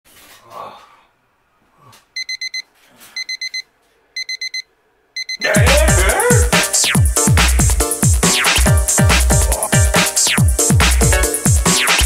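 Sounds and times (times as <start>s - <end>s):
digital alarm clock beeping: 2.2s - 2.6s, 3.2s - 5.6s
electronic music with heavy drums: 5.5s - 12.0s.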